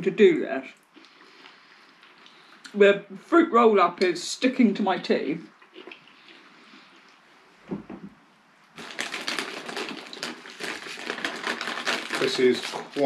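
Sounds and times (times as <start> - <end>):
plastic snack packet crinkling: 8.8 - 13.0.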